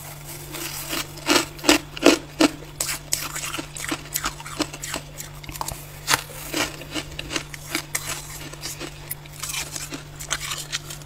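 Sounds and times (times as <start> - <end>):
freezer frost crunching: 0.0 - 11.0.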